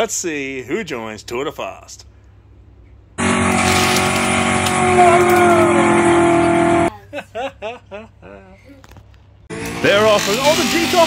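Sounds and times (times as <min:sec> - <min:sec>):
race car engines running: 0:03.2 - 0:06.9.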